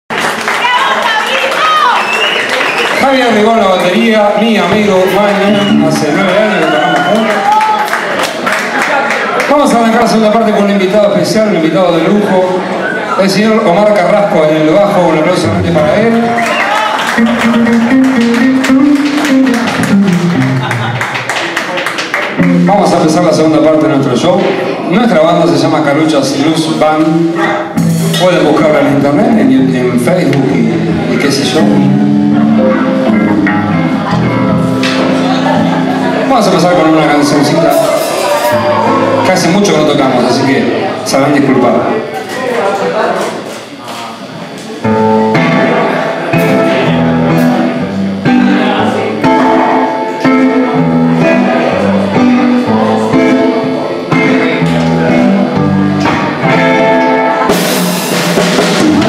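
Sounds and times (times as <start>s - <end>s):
electric guitars playing: 3.0s - 21.6s, 22.2s - 42.3s, 43.4s - 59.0s.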